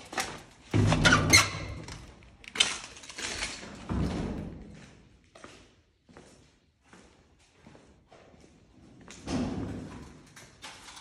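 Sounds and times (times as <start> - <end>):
rusty door squeaking: 0.8 - 2.0.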